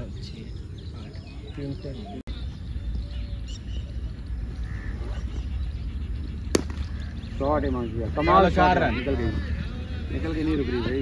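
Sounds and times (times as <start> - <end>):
cricket bat striking ball: 6.5 - 7.0.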